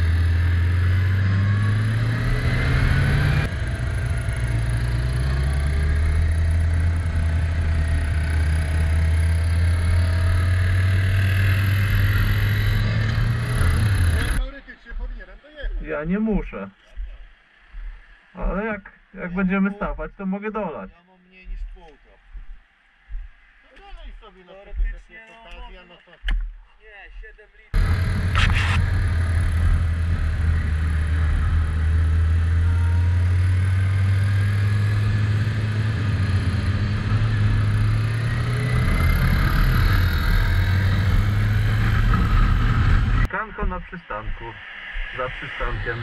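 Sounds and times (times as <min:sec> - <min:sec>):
motorcycle engine drone: 0:00.0 - 0:19.6, 0:27.8 - 0:46.0.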